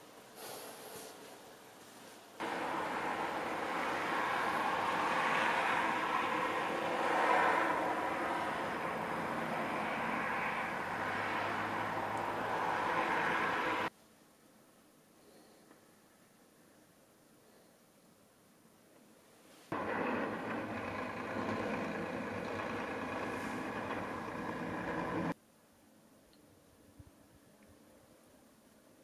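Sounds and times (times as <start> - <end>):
noisy outdoor rush: 1.1 - 14.0, 19.7 - 26.0.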